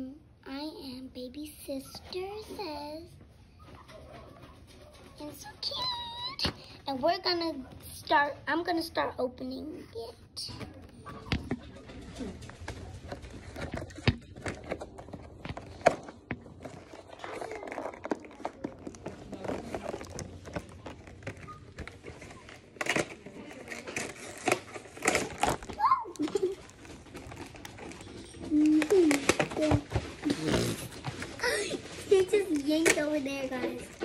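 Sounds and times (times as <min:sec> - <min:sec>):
plastic packaging crinkling: 0:10.9 - 0:34.0.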